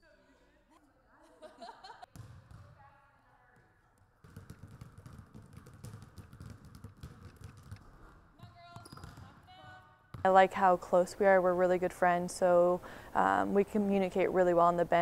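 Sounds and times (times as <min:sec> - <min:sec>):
basketballs bouncing on wooden floor: 0:02.1 - 0:02.9, 0:03.5 - 0:10.8.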